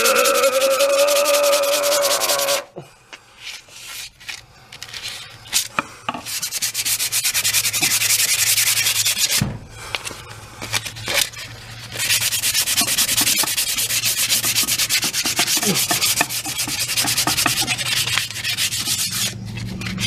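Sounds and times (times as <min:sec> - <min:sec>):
sandpaper rubbing on wood: 0:00.0 - 0:02.6, 0:06.2 - 0:09.4, 0:10.6 - 0:20.0.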